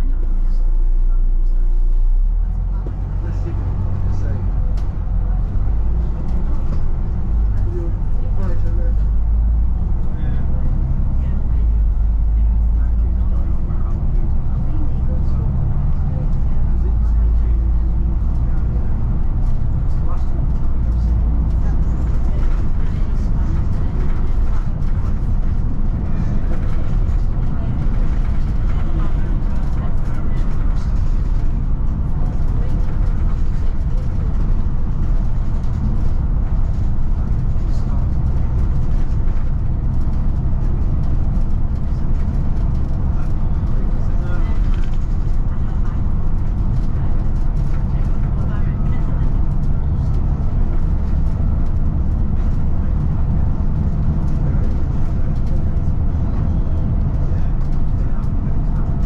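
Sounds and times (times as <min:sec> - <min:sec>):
bus engine and road noise: 0:00.0 - 0:59.0.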